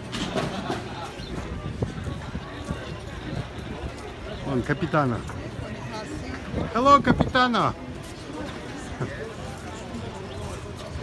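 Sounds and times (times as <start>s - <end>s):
outdoor street noise: 0.0s - 11.0s.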